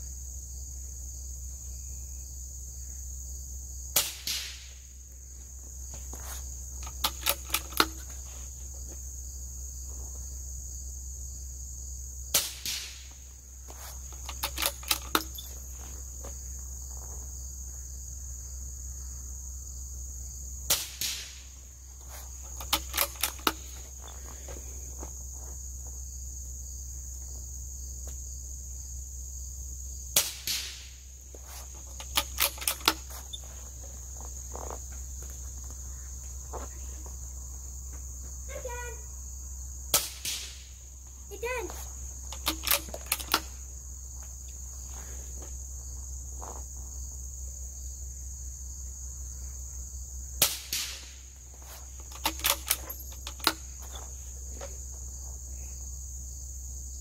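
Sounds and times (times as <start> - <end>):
crickets chirping: 0.0 - 57.0
suppressed rifle shots: 4.0 - 4.8, 12.3 - 13.1, 39.9 - 40.7, 50.4 - 51.2
rifle bolt metallic clicks: 6.8 - 8.1, 14.1 - 15.6, 22.6 - 23.6, 31.9 - 33.1, 42.3 - 43.5, 52.0 - 53.7.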